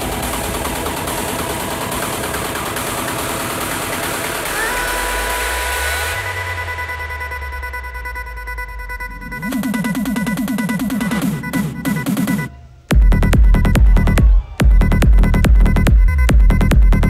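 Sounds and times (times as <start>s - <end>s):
noisy synth wash: 0.0s - 17.0s.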